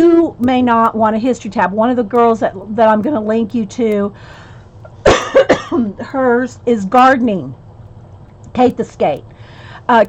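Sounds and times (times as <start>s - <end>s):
woman coughing: 5.0s - 5.9s.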